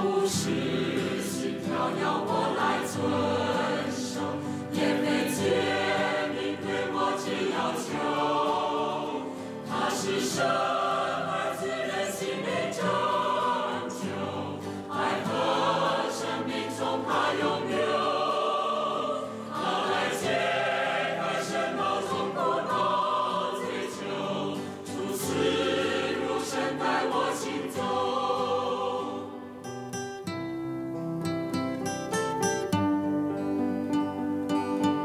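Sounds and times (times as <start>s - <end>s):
choir singing a hymn: 0.0s - 30.0s.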